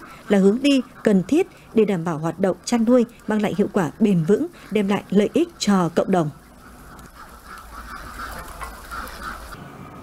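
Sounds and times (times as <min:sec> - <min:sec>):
ducks quacking: 0:00.0 - 0:09.6.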